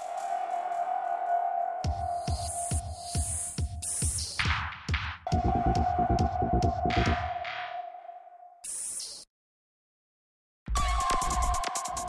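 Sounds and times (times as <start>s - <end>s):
throbbing low pulse: 5.3s - 7.2s.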